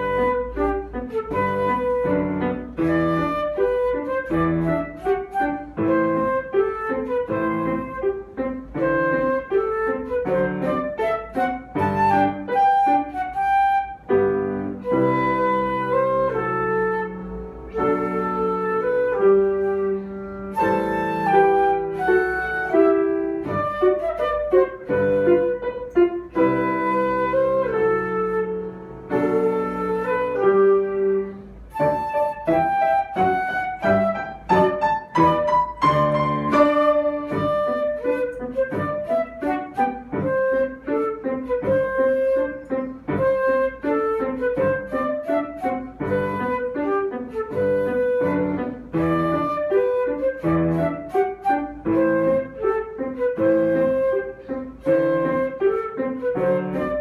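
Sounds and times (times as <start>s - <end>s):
flute melody: 0.0s - 57.0s
piano accompaniment: 0.0s - 57.0s.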